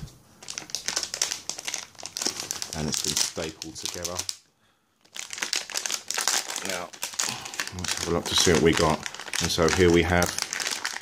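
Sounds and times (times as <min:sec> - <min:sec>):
plastic bag crinkling: 0:00.4 - 0:04.4, 0:05.0 - 0:11.0.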